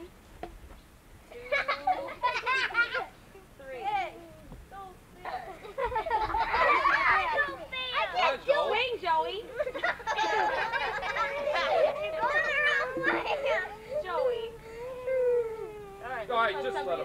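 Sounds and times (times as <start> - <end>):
young children calling and chattering: 1.3 - 17.0.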